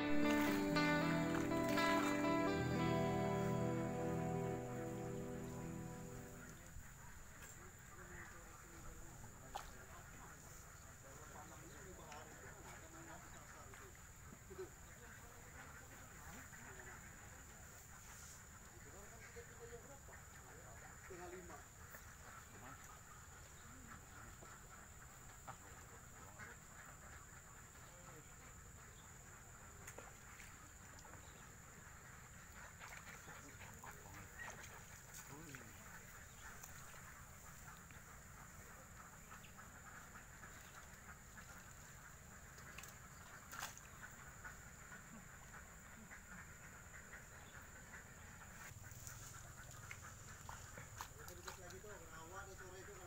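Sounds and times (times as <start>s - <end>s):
ducks quacking: 0.0s - 6.7s, 18.7s - 53.0s.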